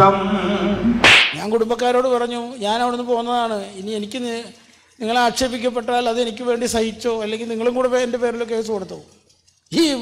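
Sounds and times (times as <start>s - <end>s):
man singing drawn-out notes: 0.0s - 1.0s
comic slap sound effect: 1.0s - 1.4s.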